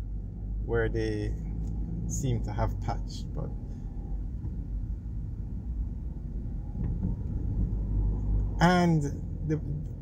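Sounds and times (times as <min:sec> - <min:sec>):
car driving on paved road: 0:00.0 - 0:10.0.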